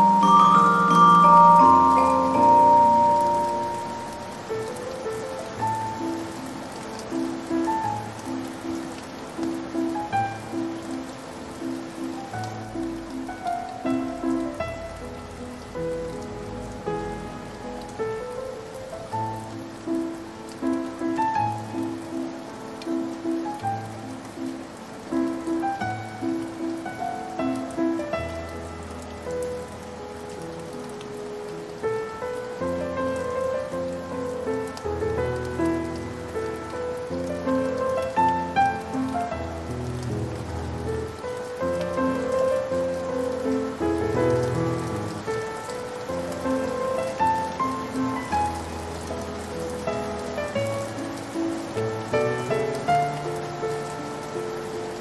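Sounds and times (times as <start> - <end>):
rain pattering: 0.0 - 55.0
sad piano music: 0.0 - 55.0.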